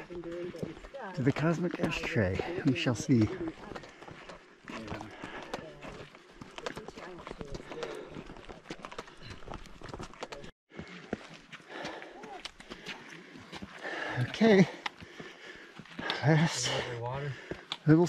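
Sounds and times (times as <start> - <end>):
footsteps on sandstone: 0.0 - 17.8.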